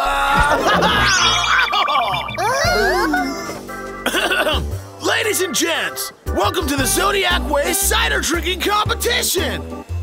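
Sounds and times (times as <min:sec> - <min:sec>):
cartoon background music: 0:00.0 - 0:10.0
character voices: 0:01.0 - 0:03.6
cough or throat clearing: 0:04.0 - 0:04.7.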